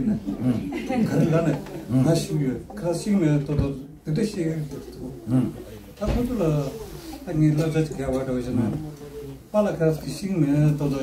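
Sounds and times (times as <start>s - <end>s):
man speaking in low voice: 0.0s - 11.0s.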